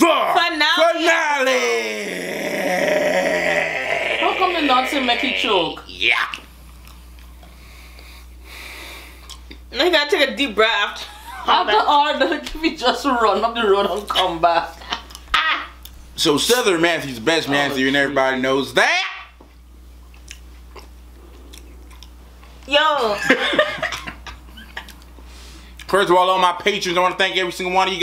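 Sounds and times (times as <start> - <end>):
steady low hum: 0.0 - 28.0
faint breath or sniff: 7.5 - 9.2, 25.2 - 25.8
person chewing crunchy snack: 20.1 - 22.2.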